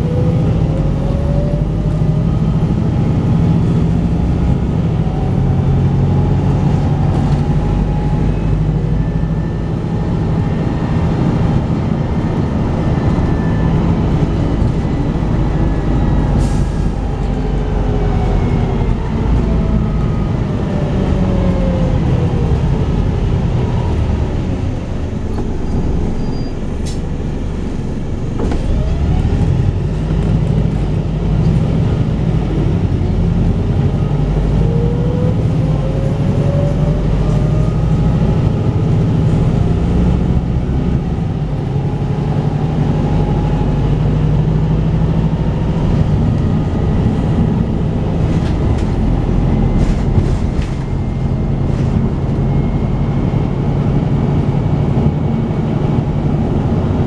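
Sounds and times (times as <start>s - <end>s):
bus diesel engine: 0.0s - 57.0s
road noise: 0.0s - 57.0s.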